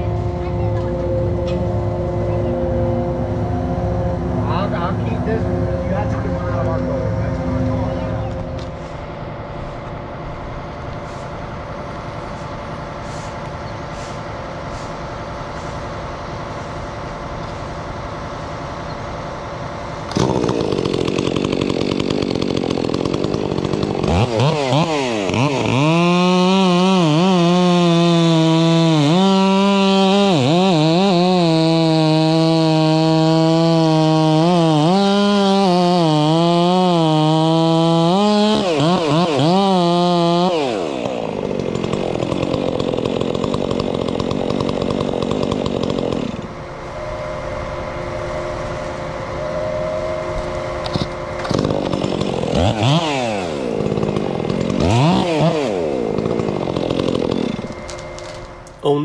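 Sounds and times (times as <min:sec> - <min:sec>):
chainsaw cutting wood: 0:11.0 - 0:46.8, 0:48.6 - 0:58.9
rushing noise: 0:46.5 - 0:51.6.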